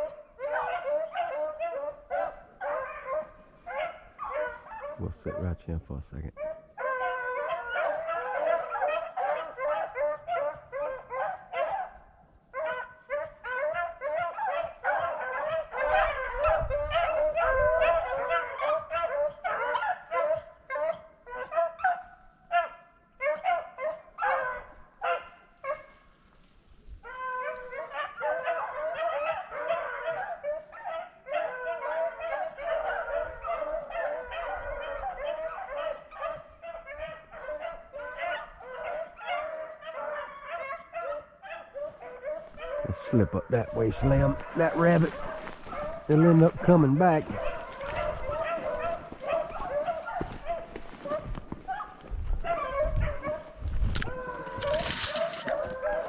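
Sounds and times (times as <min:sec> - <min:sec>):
dogs baying and yelping: 0:00.0 - 0:05.5, 0:06.3 - 0:26.0, 0:27.0 - 0:56.0.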